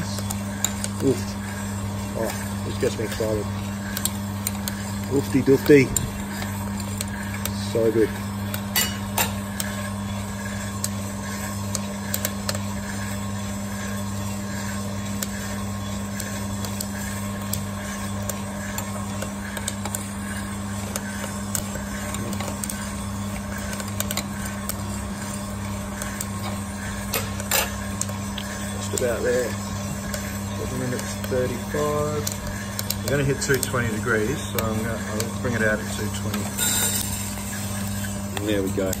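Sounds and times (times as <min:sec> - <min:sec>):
beans tumbling in rotating drum: 0:00.0 - 0:39.0
coffee roaster motor and fan hum: 0:00.0 - 0:39.0.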